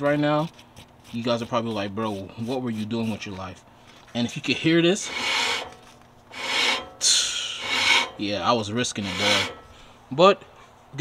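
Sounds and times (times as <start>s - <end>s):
brake rotor scraping against pads: 0.0s - 9.9s.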